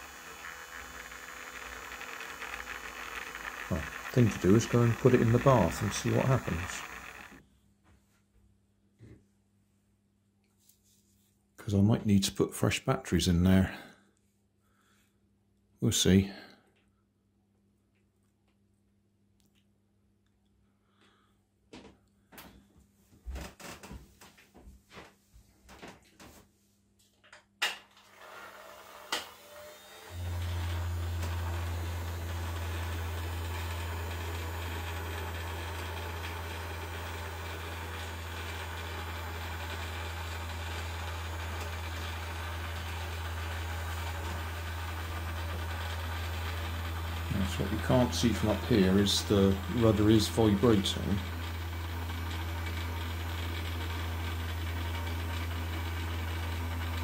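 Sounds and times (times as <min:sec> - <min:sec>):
small motor humming: 0:00.0 - 0:07.4, 0:28.0 - 0:57.0.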